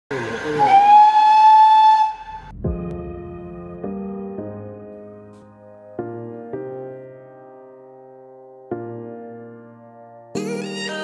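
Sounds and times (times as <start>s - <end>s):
steam locomotive whistle: 0.1s - 2.5s.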